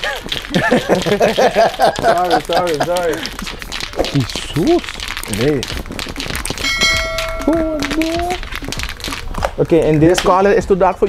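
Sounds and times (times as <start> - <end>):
electronic notification ding: 6.6 - 7.7
voice sound: 7.2 - 8.8.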